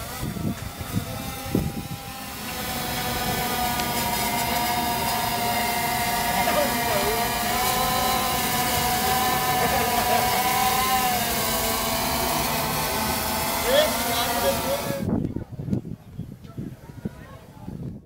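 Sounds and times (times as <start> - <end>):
drone propellers whining: 0.0 - 15.2.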